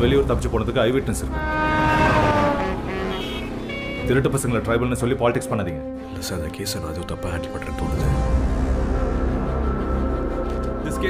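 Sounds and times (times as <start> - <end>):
train horn dropping in pitch: 1.2 - 4.3.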